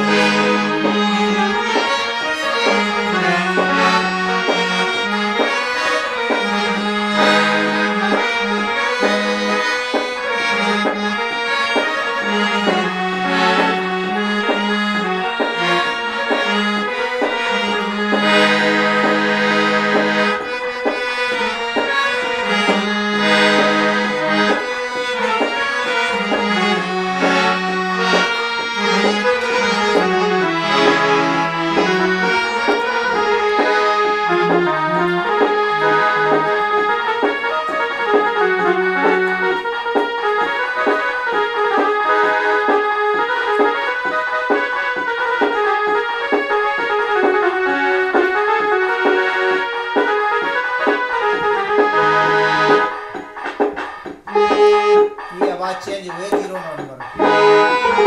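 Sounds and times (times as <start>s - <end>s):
harmonium melody: 0.0s - 58.0s.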